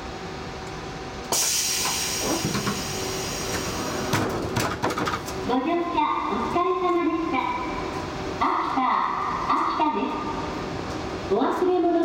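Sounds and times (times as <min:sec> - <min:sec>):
compressed air hissing from train: 0:01.3 - 0:04.2.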